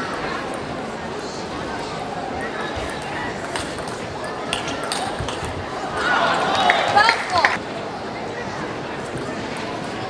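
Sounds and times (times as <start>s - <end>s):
crowd voices and shouts: 0.0s - 10.0s.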